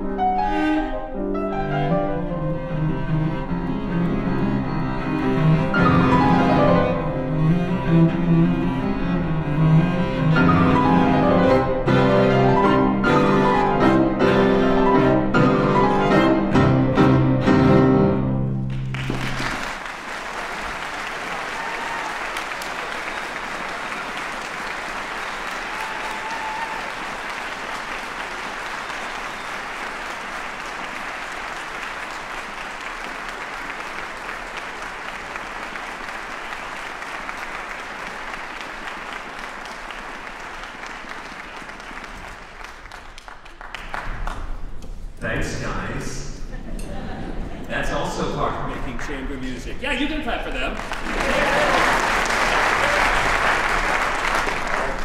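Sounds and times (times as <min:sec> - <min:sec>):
audience applauding: 0:18.7 - 0:44.7, 0:49.9 - 0:55.0.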